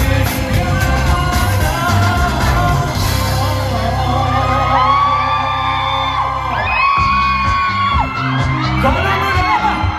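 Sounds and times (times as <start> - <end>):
loud live pop song: 0.0 - 9.9.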